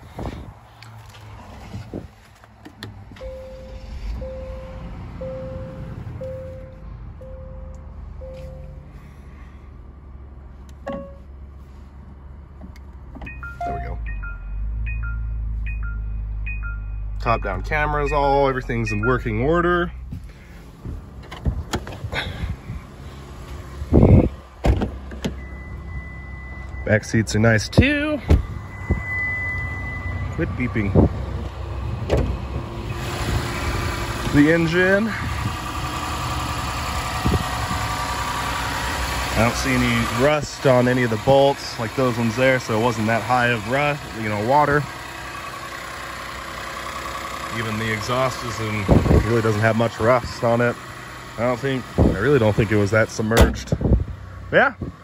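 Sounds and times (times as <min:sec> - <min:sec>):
car warning chime beeping: 0:03.2 - 0:09.1, 0:10.8 - 0:11.3, 0:13.2 - 0:19.9, 0:25.3 - 0:30.9.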